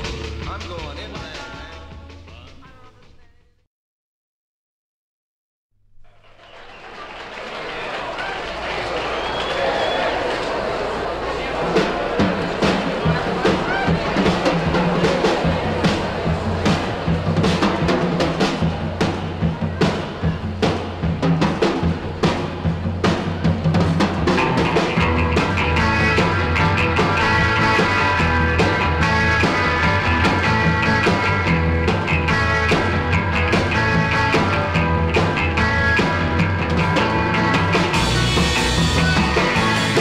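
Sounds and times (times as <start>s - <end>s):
surf rock band playing: 0.0s - 3.2s, 8.6s - 40.0s
bass line: 0.0s - 3.5s, 11.2s - 40.0s
drum kit hits: 11.6s - 40.0s.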